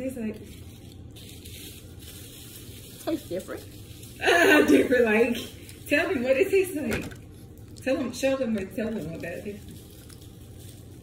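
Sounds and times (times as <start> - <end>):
low room hum: 0.0 - 11.0
biting and chewing: 8.9 - 11.0.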